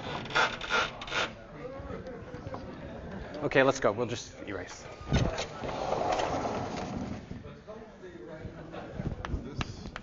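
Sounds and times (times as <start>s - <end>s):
sliding panels rolling and scraping: 5.2s - 7.4s.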